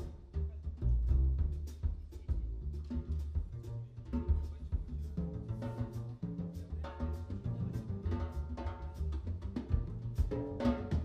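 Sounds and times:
drum kit and cymbals: 0.0 - 11.0
upright double bass walking: 0.0 - 11.0.

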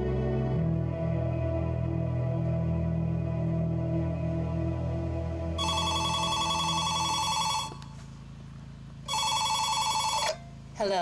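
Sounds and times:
low ambient music drone: 0.0 - 10.7
telephone ringing: 5.6 - 7.8, 9.1 - 10.5.

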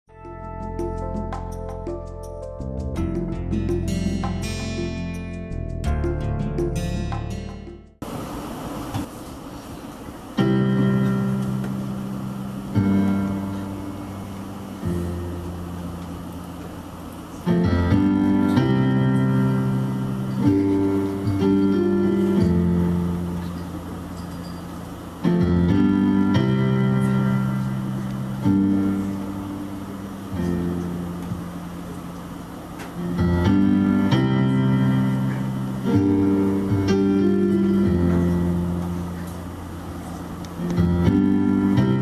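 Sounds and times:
piano ballad chords: 0.1 - 9.1, 9.8 - 42.0.

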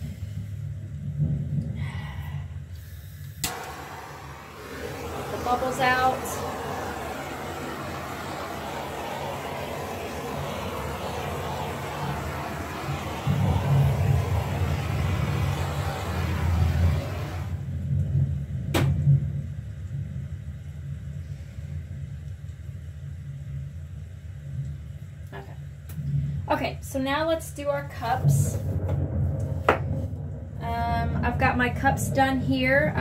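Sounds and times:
torch flame hissing: 0.0 - 17.9
low rumble: 0.0 - 23.8, 25.9 - 33.0.

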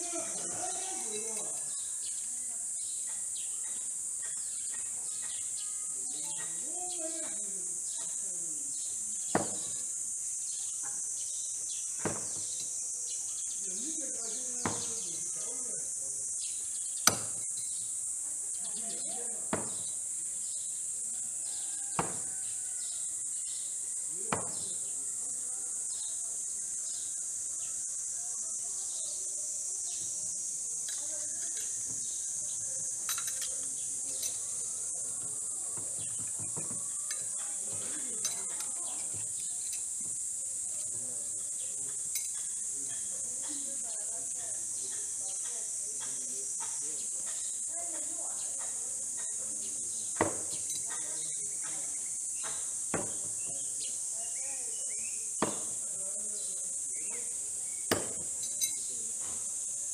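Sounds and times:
insects droning: 0.0 - 59.9
knife striking wooden target: 9.3 - 9.7, 12.0 - 12.6, 14.6 - 15.0, 17.0 - 17.5, 19.5 - 19.9, 22.0 - 22.3, 24.3 - 24.6, 50.2 - 50.6, 52.5 - 53.4, 55.4 - 55.8, 57.8 - 58.4.

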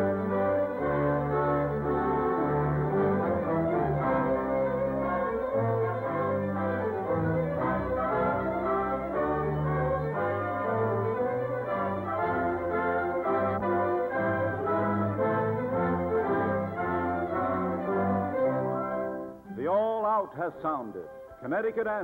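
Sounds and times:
orchestral music with brass chords: 0.0 - 22.0.

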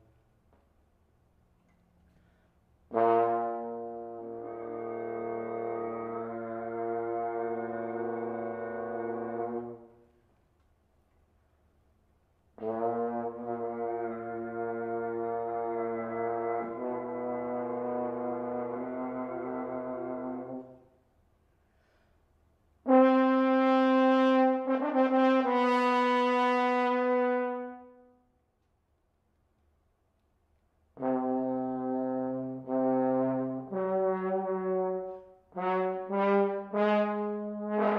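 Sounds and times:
french horn playing low notes: 2.9 - 10.2, 12.6 - 20.9, 31.0 - 37.9.

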